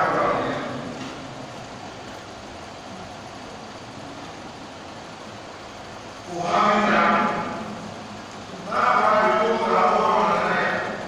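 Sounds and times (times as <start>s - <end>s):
amplified man's voice with echo: 0.0s - 0.9s, 6.2s - 7.8s, 8.5s - 11.0s
sound system hiss: 0.0s - 11.0s.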